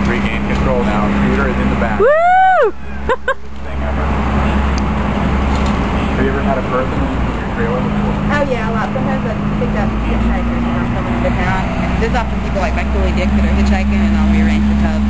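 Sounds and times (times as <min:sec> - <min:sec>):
steady low hum: 0:00.0 - 0:15.0
loud whooping yell: 0:02.0 - 0:03.2
faint chatter: 0:02.7 - 0:15.0.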